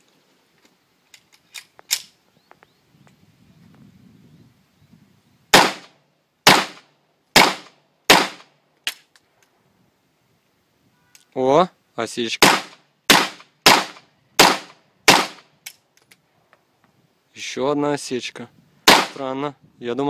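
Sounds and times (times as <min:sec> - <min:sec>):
pistol shots: 0:05.5 - 0:08.5, 0:12.4 - 0:15.4, 0:18.9 - 0:19.2.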